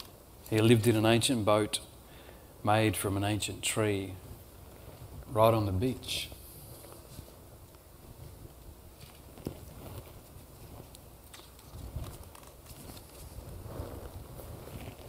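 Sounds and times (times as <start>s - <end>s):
picture book pages rustling: 6.7s - 15.0s.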